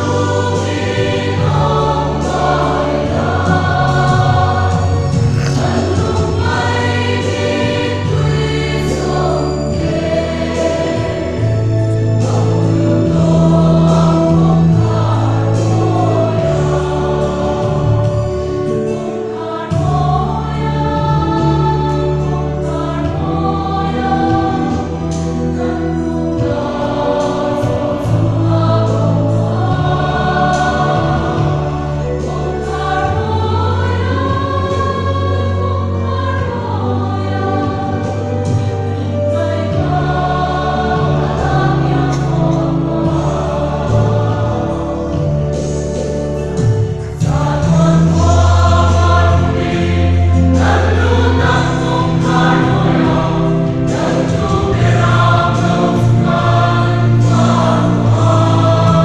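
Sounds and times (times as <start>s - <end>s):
choir singing a hymn: 0.0s - 59.0s.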